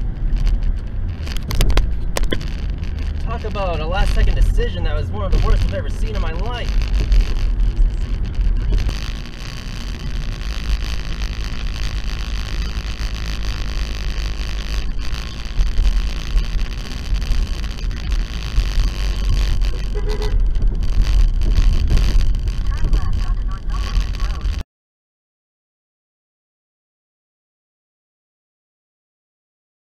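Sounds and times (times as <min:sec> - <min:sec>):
car road and engine rumble: 0:00.0 - 0:24.6.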